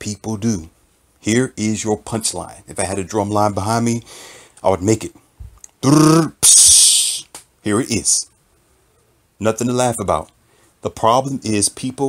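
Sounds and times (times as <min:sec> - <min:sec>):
man imitating drum rimshot vocally: 0:05.8 - 0:07.4.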